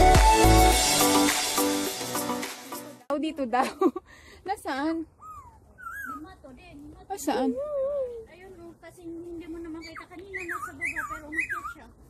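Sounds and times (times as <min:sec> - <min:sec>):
small animal whining: 0:05.2 - 0:06.3.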